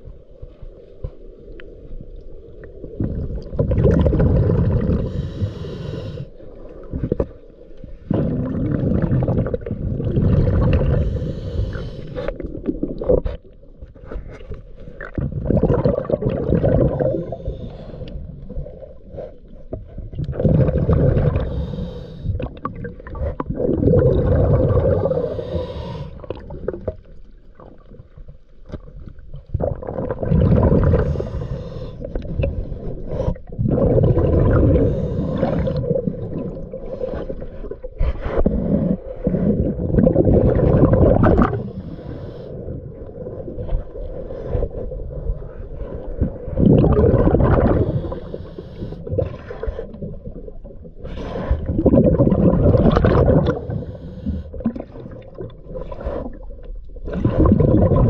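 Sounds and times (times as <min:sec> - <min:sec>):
exhaled bubbles gurgling: 0:01.6 - 0:58.0
diver inhaling through regulator: 0:04.4 - 0:06.6, 0:10.1 - 0:12.7, 0:16.6 - 0:19.5, 0:20.4 - 0:22.6, 0:23.6 - 0:26.8, 0:30.4 - 0:39.9, 0:40.7 - 0:50.4, 0:51.0 - 0:52.1, 0:53.3 - 0:55.0.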